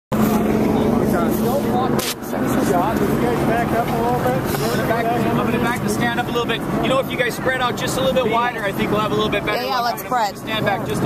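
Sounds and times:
low mechanical hum: 0.1s - 9.6s
people talking: 0.6s - 11.0s.

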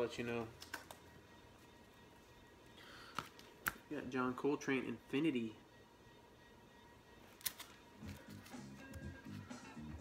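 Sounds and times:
record sleeve crackle: 7.3s - 9.4s.

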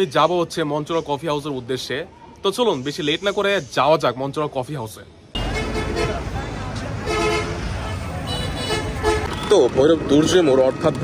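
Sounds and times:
busy street traffic: 0.0s - 11.0s
vehicle horns honking: 5.4s - 6.3s, 7.0s - 9.7s.

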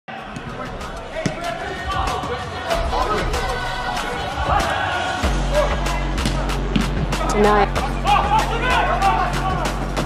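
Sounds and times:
players' voices: 0.1s - 10.0s.

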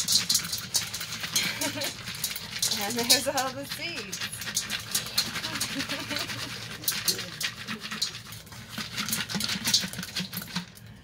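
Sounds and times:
dry seeds rattling in gourd: 0.0s - 11.0s
seeds pattering into metal bowl: 0.0s - 11.0s.

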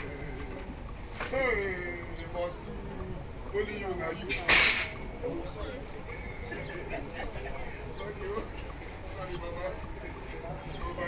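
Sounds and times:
sharp crack: 4.3s - 5.0s.

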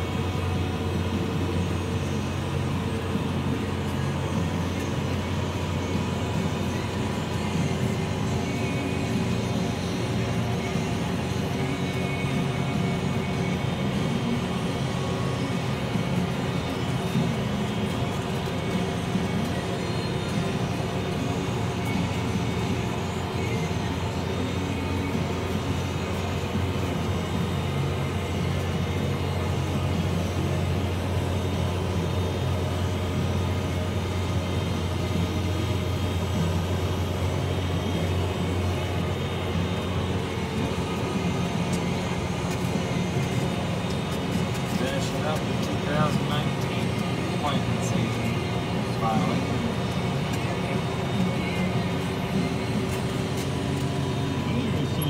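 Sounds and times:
steady whine: 0.0s - 55.0s
tractor diesel engine droning: 0.0s - 55.0s.

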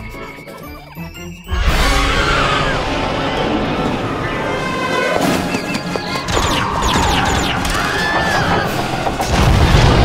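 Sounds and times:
animated film music: 0.0s - 10.0s.

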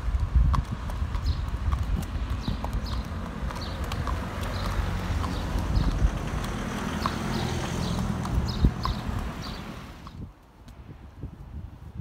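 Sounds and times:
steady low rumble: 0.0s - 6.8s
horse hoofbeats clip-clopping: 0.0s - 10.8s.

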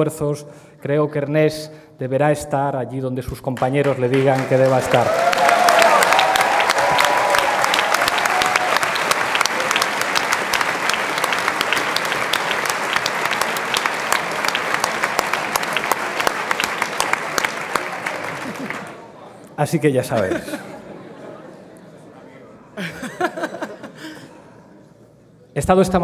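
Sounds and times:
audience applauding: 3.6s - 19.2s.

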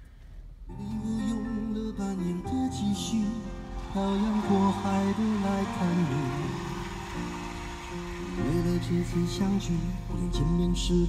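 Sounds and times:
song through car speakers: 0.7s - 11.0s.

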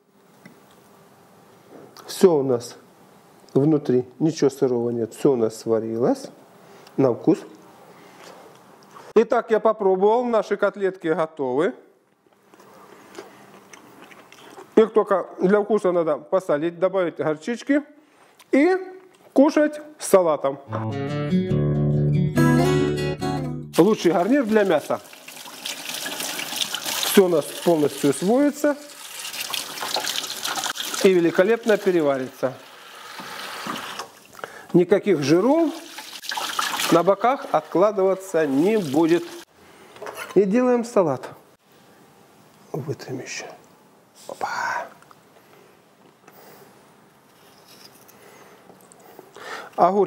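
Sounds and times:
soft scraping and rustling: 47.2s - 48.2s.

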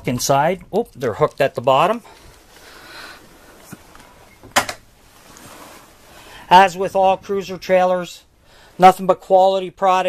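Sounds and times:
sliding wooden door rubbing: 4.3s - 6.0s.

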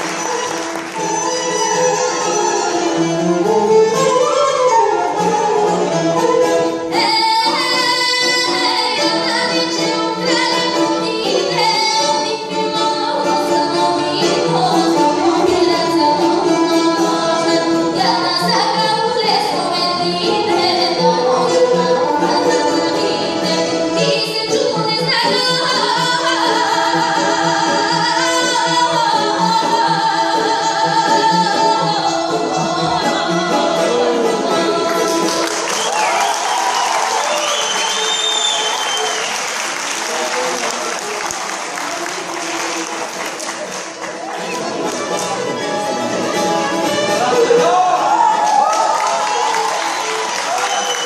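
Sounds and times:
plucked string instruments: 0.0s - 36.8s, 39.2s - 51.0s
bowed string instrument: 0.0s - 51.0s
folk ensemble playing: 0.0s - 51.0s.

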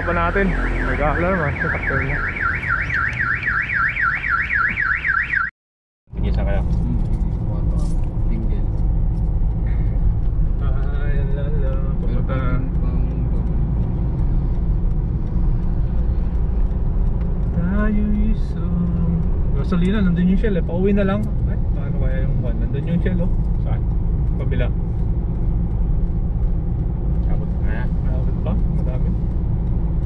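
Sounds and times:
car alarm warbling: 0.0s - 5.5s
car engine and road rumble: 0.0s - 5.5s, 6.1s - 30.0s.

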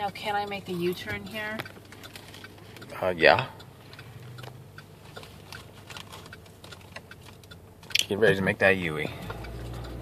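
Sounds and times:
car engine hum: 0.0s - 10.0s
turn signal ticking: 0.0s - 10.0s.

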